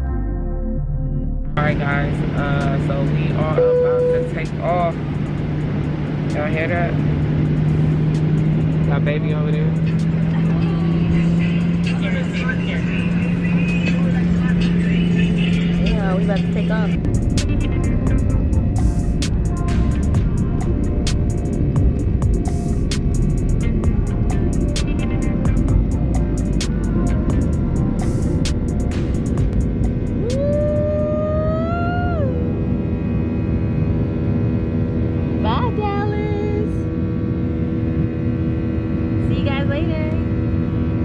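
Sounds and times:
background music: 0:00.0 - 0:02.8, 0:07.6 - 0:30.7
airliner cabin hum: 0:01.4 - 0:41.0
voices: 0:08.8 - 0:18.4.

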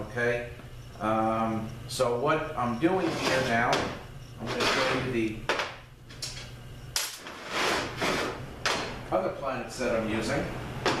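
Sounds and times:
parts scraping on workbench: 0:02.8 - 0:05.2, 0:06.4 - 0:08.4.

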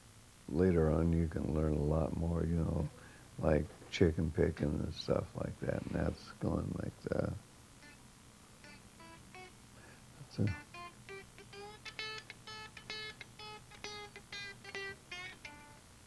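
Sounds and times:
electric guitar chicken-picking: 0:00.7 - 0:16.0.

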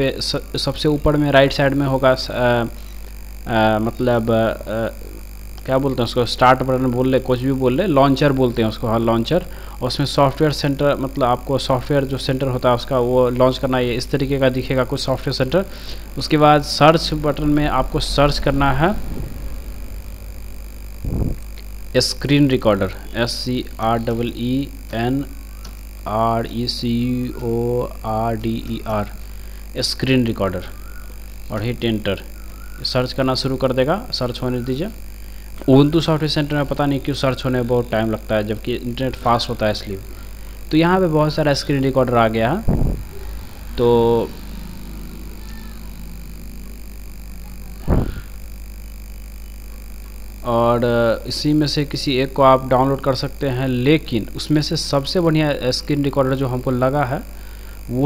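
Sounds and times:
faint high-pitched whine: 0:00.0 - 0:58.0
low electrical hum: 0:00.0 - 0:58.0
even hiss: 0:13.7 - 0:25.3, 0:39.0 - 0:49.7
short loud sound: 0:17.1 - 0:21.6.

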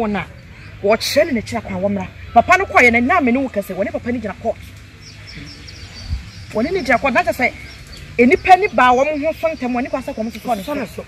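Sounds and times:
woman speaking: 0:00.0 - 0:04.6, 0:06.5 - 0:11.0.

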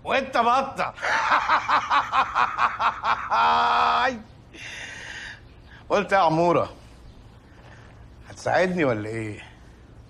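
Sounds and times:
man laughing heartily: 0:01.0 - 0:04.0.

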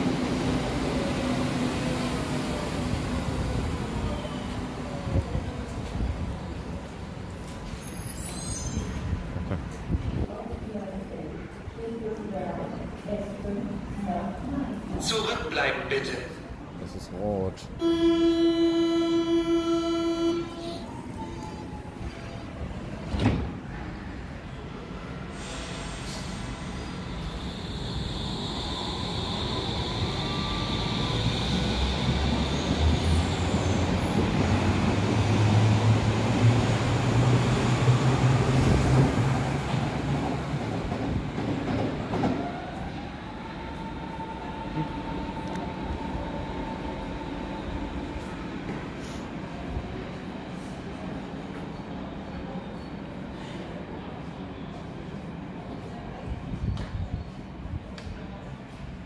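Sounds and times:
train running on rails: 0:00.0 - 0:59.0.

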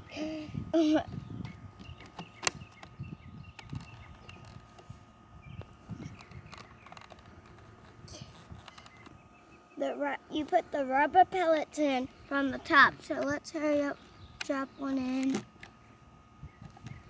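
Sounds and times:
handling noise: 0:05.6 - 0:09.2.

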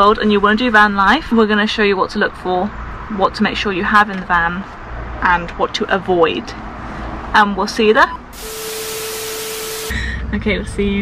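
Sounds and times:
static hiss burst: 0:08.4 - 0:09.9.

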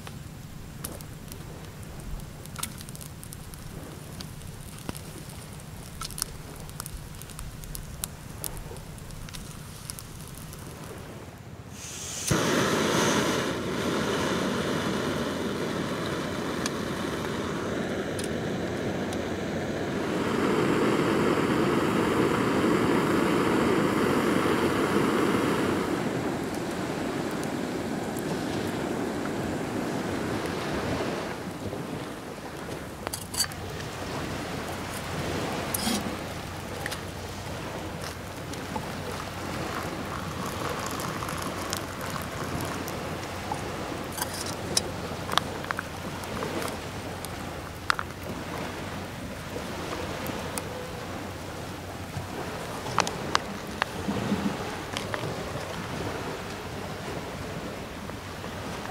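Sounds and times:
campfire crackling pops: 0:00.0 - 0:11.2, 0:11.8 - 0:58.9
camping stove hissing: 0:00.0 - 0:58.9.

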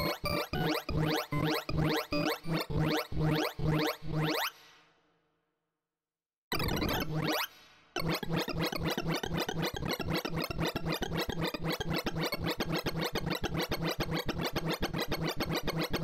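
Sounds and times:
fast stream of electronic blips: 0:00.0 - 0:04.6, 0:06.6 - 0:16.0.

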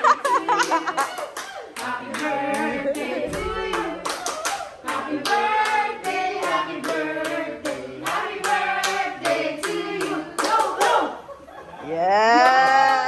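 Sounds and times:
group cheering: 0:00.0 - 0:05.9, 0:11.9 - 0:13.0
group singing: 0:00.0 - 0:11.1
group clapping in time: 0:00.4 - 0:11.1.

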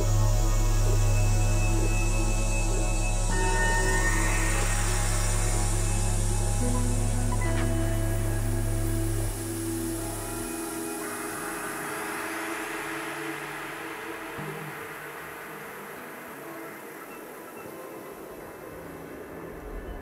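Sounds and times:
deep low drone: 0:00.0 - 0:14.7
hissing noise wash with held tones: 0:00.0 - 0:20.0.

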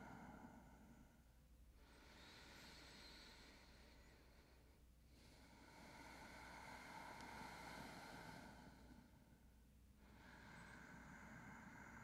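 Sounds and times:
soft breathing hiss: 0:00.0 - 0:12.0.

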